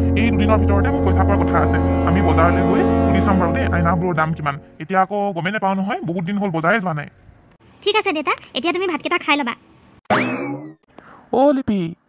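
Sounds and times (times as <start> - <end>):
cartoon boing sound effect: 10.1 - 10.8.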